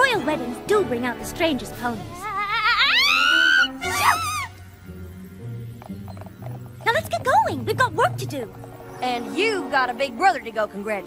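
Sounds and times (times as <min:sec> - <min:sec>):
soft background music: 0:00.0 - 0:11.0
cartoon character wavering cry: 0:02.2 - 0:04.5.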